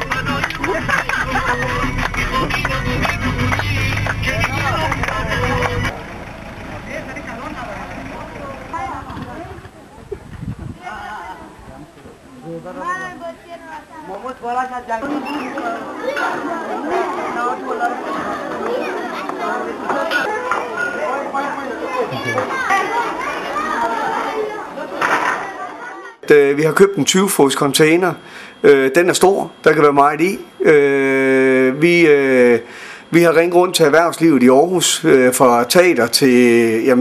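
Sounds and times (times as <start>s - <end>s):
bus engine idling: 0.0s - 10.0s
children chattering and calling out: 0.0s - 35.6s
people's voices: 0.0s - 37.0s.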